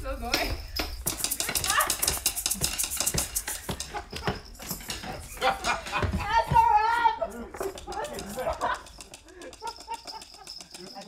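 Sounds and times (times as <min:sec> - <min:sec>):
sharp clicks and taps: 0:00.3 - 0:06.7, 0:07.5 - 0:11.0
people laughing and chattering: 0:00.9 - 0:11.0.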